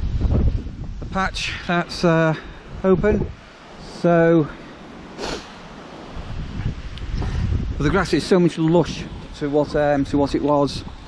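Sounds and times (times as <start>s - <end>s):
wind buffeting microphone: 0.0s - 11.0s
brief hiss: 5.1s - 5.7s.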